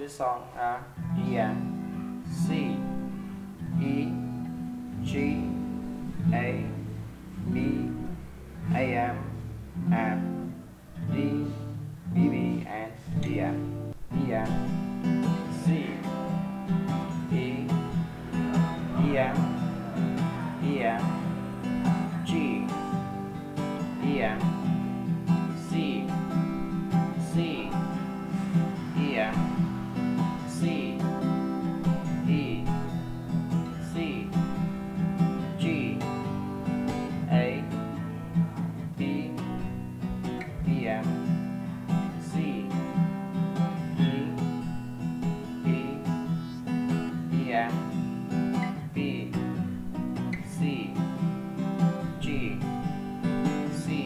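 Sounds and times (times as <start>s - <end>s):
acoustic guitar strumming: 0.4s - 54.0s.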